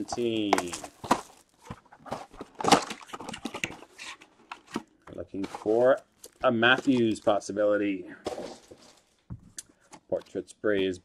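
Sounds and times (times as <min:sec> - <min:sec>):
foil wrappers rustling: 0:00.0 - 0:10.2.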